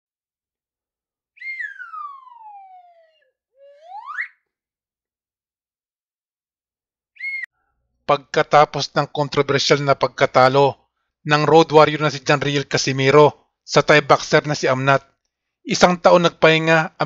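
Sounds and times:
sliding whistle notes: 1.4 - 4.5, 7.2 - 7.5.

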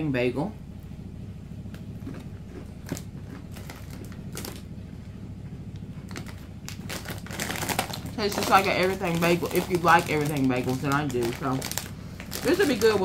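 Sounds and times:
steady low background hum: 0.0 - 13.0
person chewing crunchy chips: 2.0 - 4.6, 6.0 - 13.0.

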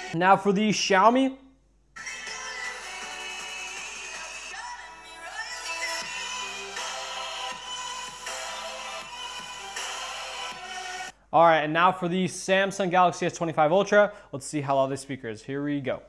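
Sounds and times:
song through phone loudspeaker: 0.0 - 0.9, 2.0 - 11.2.

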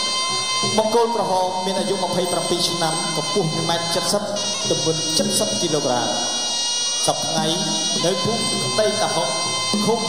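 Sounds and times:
reed oboe music: 0.0 - 10.0.

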